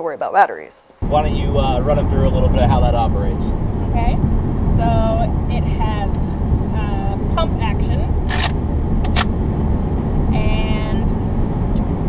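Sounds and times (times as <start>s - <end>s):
low road rumble: 0.9s - 12.0s
plastic pump action of toy blaster: 8.3s - 8.5s
sharp clicks: 8.3s - 9.3s.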